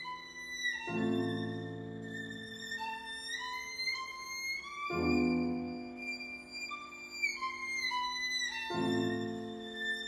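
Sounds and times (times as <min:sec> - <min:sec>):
violin playing classical music: 0:00.0 - 0:10.0.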